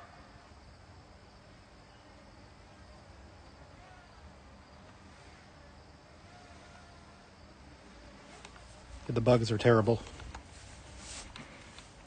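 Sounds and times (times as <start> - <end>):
insects buzzing: 0.0 - 12.0
low steady hiss: 0.0 - 12.0.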